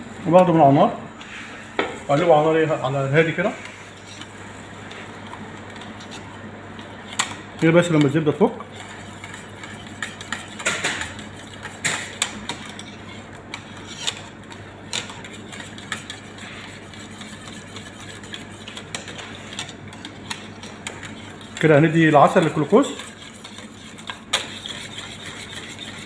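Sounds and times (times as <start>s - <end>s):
wire whisk scraping metal pot: 7.1s - 26.0s.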